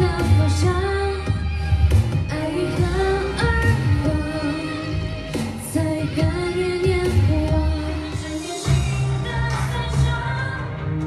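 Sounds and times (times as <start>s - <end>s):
backing track with bass line: 0.0s - 11.0s
woman singing pop song: 0.0s - 11.0s.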